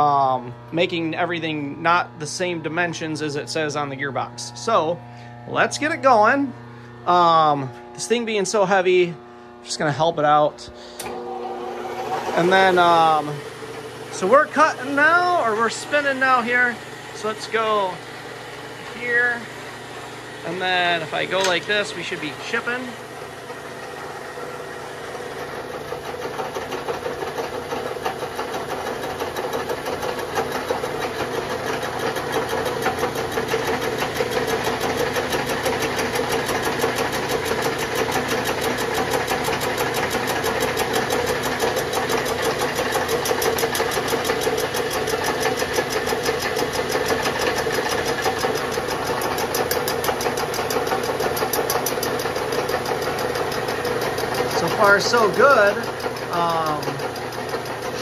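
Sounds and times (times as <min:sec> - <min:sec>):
milling machine hum: 0:00.0 - 0:58.0
flycutter ticking on metal: 0:28.9 - 0:58.0.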